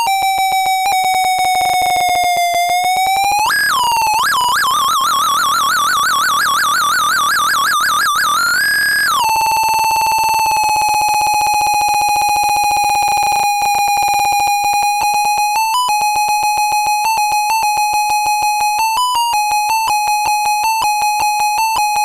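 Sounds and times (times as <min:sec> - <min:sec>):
warbling electronic toy tone: 0:00.0 - 0:14.5
pulsing rhythm with pitch blips: 0:00.0 - 0:22.0.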